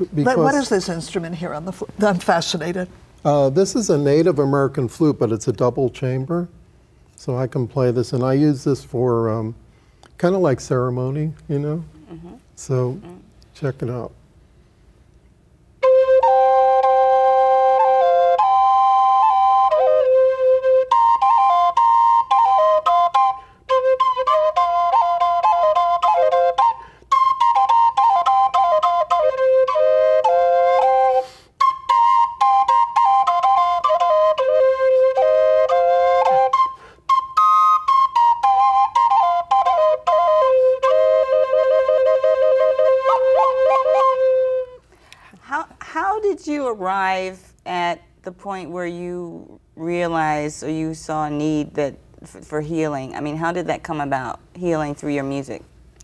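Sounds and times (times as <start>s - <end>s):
flute melody over drone: 15.8s - 44.8s.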